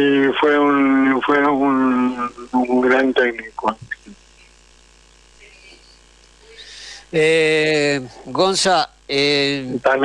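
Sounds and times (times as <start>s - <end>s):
low steady background hum: 0.0s - 10.0s.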